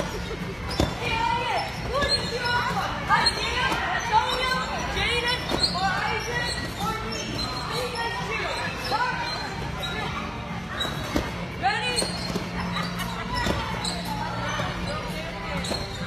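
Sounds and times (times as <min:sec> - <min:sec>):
bodies thumping on trampolines: 0:00.0 - 0:07.7, 0:09.4 - 0:16.0
echoing voices and shouts: 0:00.0 - 0:16.0.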